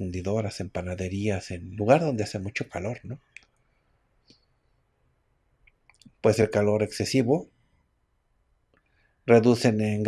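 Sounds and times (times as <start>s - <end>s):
man's voice: 0.0s - 3.2s, 6.2s - 7.4s, 9.3s - 10.0s.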